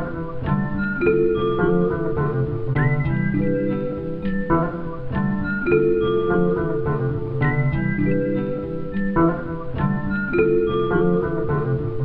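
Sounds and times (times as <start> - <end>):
plucked guitar notes: 0.0 - 12.0.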